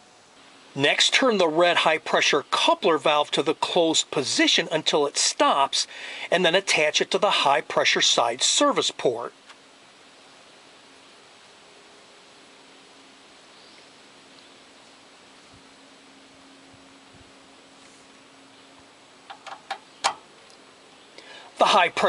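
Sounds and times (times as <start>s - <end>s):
background hiss: 0.0s - 22.0s
coupler valve clicking onto port: 19.3s - 20.2s.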